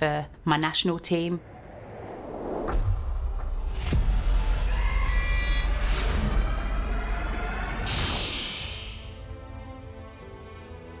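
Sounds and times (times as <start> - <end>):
whoosh: 1.4 - 4.6.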